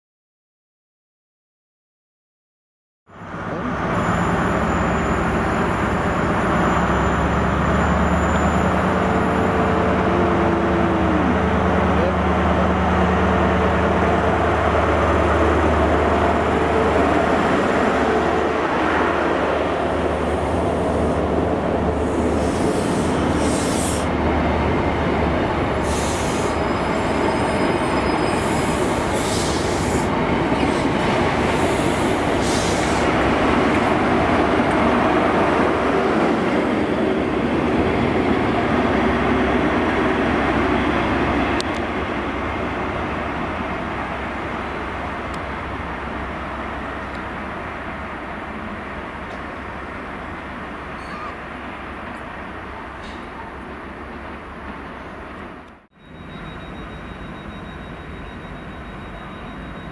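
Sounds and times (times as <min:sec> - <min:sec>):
train wheels rolling on rail: 0:03.4 - 0:59.9
high-pitched wheel squeals: 0:26.2 - 0:29.9, 0:50.9 - 0:51.4.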